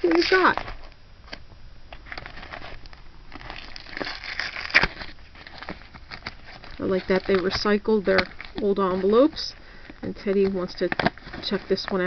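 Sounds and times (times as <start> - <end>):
paper envelope crinkling: 0.0 - 12.0
sharp envelope crack: 2.0 - 9.3.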